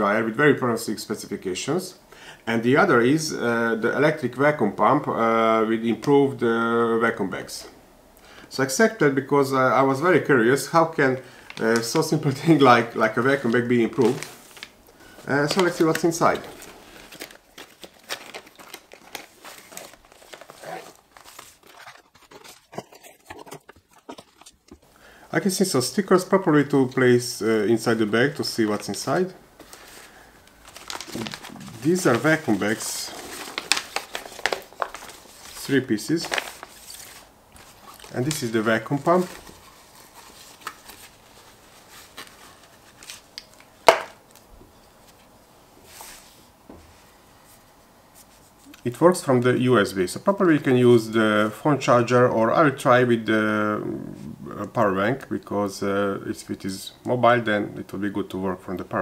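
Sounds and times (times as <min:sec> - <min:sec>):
plastic rustling: 0:11.3 - 0:24.9, 0:27.9 - 0:45.3.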